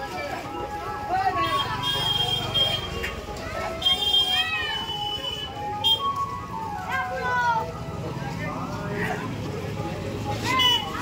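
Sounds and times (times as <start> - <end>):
low traffic rumble: 0.0 - 11.0
people talking and calling out: 0.0 - 11.0.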